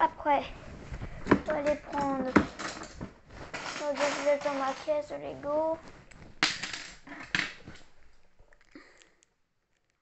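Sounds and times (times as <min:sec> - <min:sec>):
plastic bricks clattering in box: 0:02.4 - 0:05.1.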